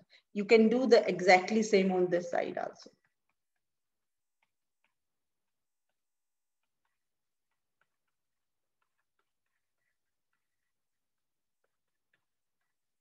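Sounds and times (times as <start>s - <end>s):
stylus clicking on tablet: 2.2s - 13.0s.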